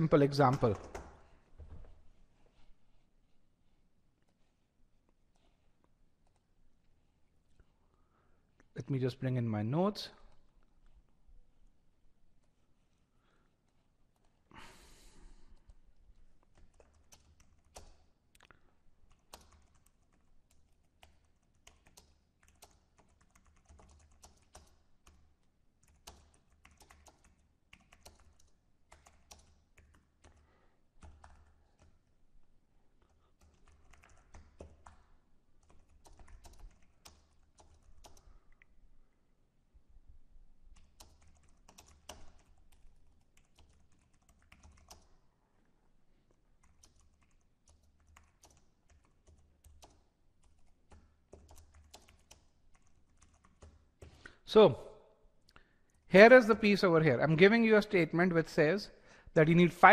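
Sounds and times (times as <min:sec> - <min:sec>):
typing on computer keyboard: 0:00.5 - 0:01.2, 0:16.4 - 0:18.1, 0:19.0 - 0:30.4, 0:31.0 - 0:32.1, 0:33.0 - 0:38.6, 0:40.7 - 0:45.2, 0:46.3 - 0:54.2.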